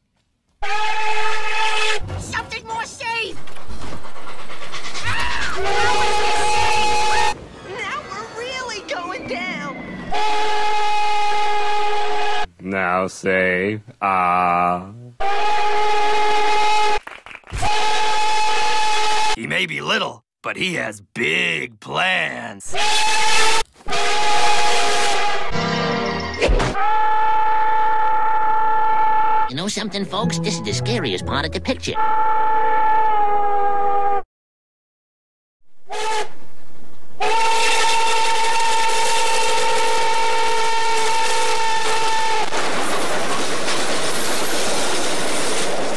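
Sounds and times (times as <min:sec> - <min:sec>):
passing train rumble: 0:03.3 - 0:12.5, 0:36.0 - 0:45.9
steam locomotive whistle blasts: 0:04.7 - 0:07.4, 0:10.0 - 0:12.5, 0:15.2 - 0:17.0, 0:17.6 - 0:19.4, 0:22.7 - 0:25.6, 0:26.8 - 0:29.5, 0:32.0 - 0:34.2, 0:35.9 - 0:36.4, 0:37.2 - 0:42.5.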